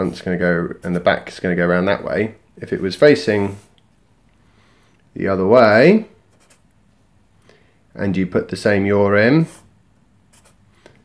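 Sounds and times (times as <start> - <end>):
marker scratching on paper: 6.3 - 6.7, 9.4 - 9.7, 10.3 - 10.6.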